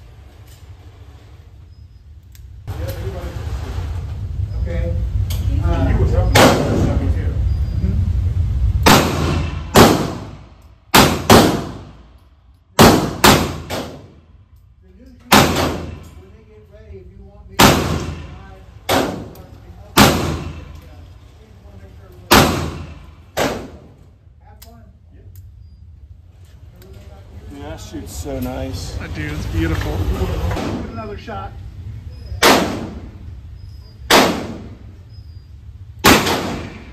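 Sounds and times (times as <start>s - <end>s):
low rumble: 2.6s - 24.4s
gunshots with echo: 8.8s - 12.0s, 12.8s - 14.2s, 15.3s - 16.1s, 17.6s - 20.7s, 22.3s - 23.9s, 32.4s - 33.2s, 34.1s - 34.8s, 36.0s - 36.9s.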